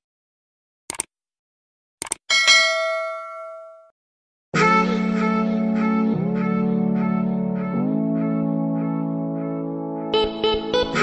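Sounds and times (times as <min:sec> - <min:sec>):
bell ding: 0:02.3 - 0:03.9.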